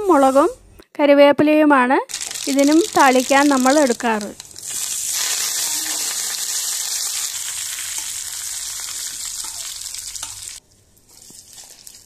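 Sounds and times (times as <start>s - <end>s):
spices sizzling in hot oil: 2.1s - 12.0s.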